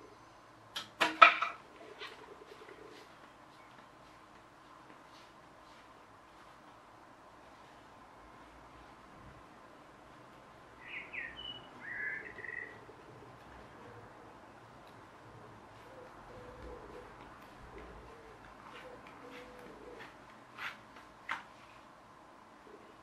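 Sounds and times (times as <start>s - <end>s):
pigeon cooing: 1.6s - 3.3s, 10.8s - 20.8s, 22.6s - 23.0s
bird chirping: 10.8s - 14.4s.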